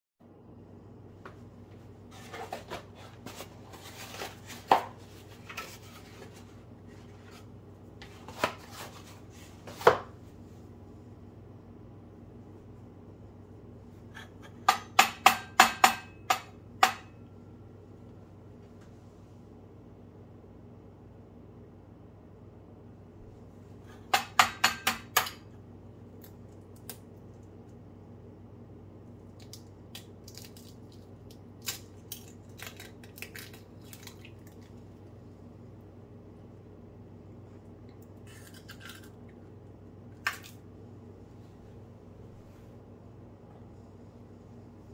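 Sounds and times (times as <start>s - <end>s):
faint low hum: 0.2s - 44.9s
kitchenware knocks and clinks: 14.3s - 17.2s
eggshell crackling: 29.3s - 35.0s.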